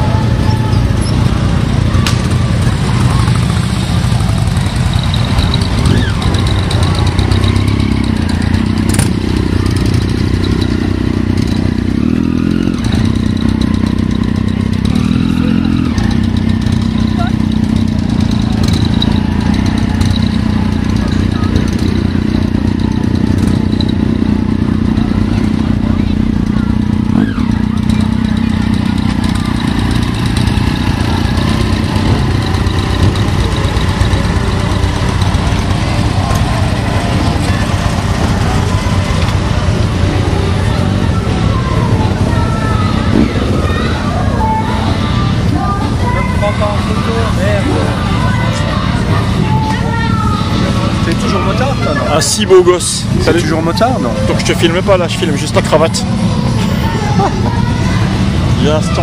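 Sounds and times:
motorcycle engine idling: 0.0s - 59.0s.

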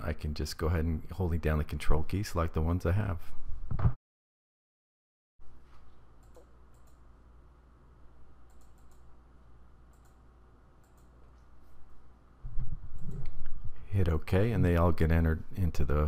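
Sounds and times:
low steady hum: 5.4s - 16.0s
computer mouse clicks: 6.2s - 7.0s, 8.4s - 9.1s, 9.9s - 10.2s, 10.8s - 11.5s.

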